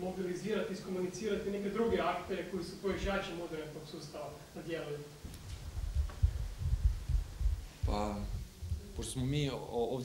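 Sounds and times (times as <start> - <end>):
microphone being bumped: 5.2 - 9.2.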